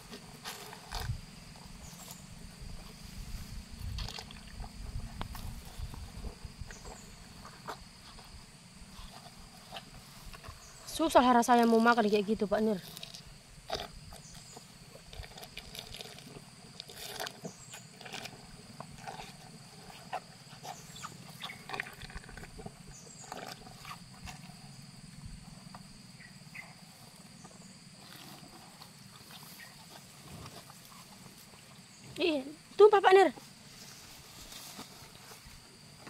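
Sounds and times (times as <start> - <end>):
cattle eating from plastic bucket: 0.0 - 3.0, 3.8 - 10.8, 12.8 - 25.9, 27.0 - 31.8.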